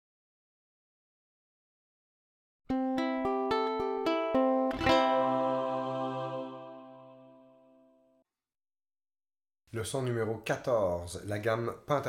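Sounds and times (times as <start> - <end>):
ukulele tune: 2.7 - 7.8.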